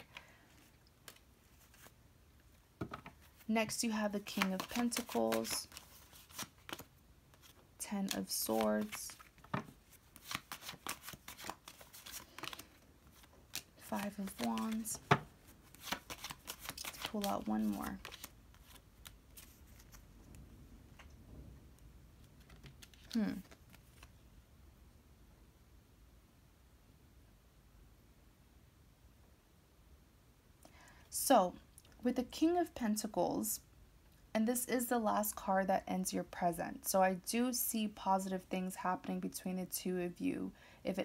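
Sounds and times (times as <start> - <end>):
cards clicking and tapping: 4.2 - 6.9, 13.5 - 18.8.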